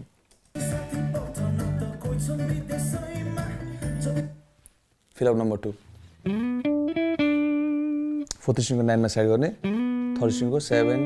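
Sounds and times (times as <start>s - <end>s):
backing music with bass and percussion: 0.6s - 4.4s
electric guitar playing: 6.1s - 8.4s, 9.6s - 11.0s.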